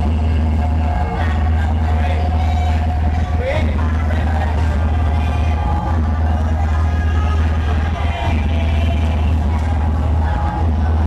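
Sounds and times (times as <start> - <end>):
heavy bass: 0.0 - 11.0
loud hardcore electronic dance music: 0.0 - 11.0.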